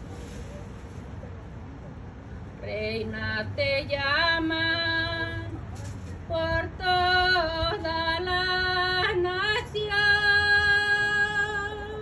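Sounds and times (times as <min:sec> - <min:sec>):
woman singing slow song: 0:02.6 - 0:05.6, 0:06.3 - 0:12.0.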